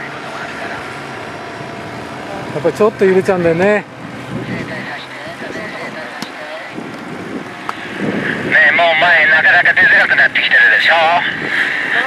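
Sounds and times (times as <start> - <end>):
paramotor engine droning: 0.0 - 12.0.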